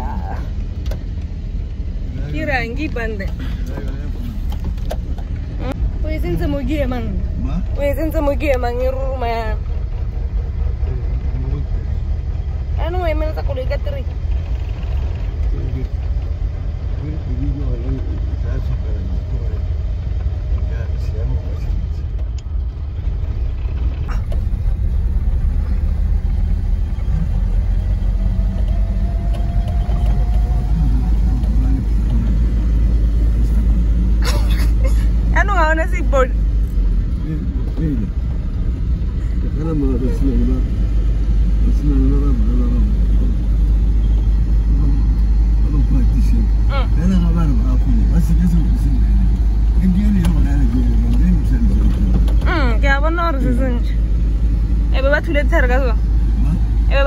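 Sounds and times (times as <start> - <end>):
vehicle engine and road rumble: 0.0 - 57.0
voices: 5.5 - 22.3, 26.8 - 38.4, 39.2 - 54.1, 54.8 - 57.0.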